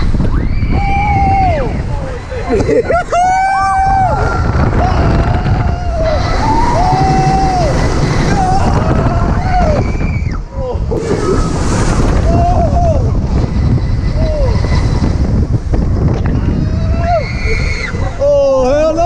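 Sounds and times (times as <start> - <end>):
riders yelling and screaming: 0.0 - 19.0
wind buffeting microphone: 0.0 - 19.0.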